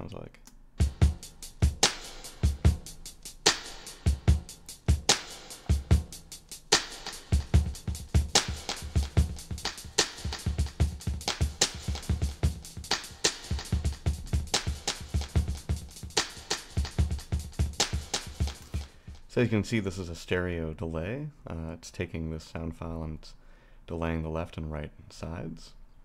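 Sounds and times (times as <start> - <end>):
electronic drum loop with delay echoes: 0.8 - 19.5.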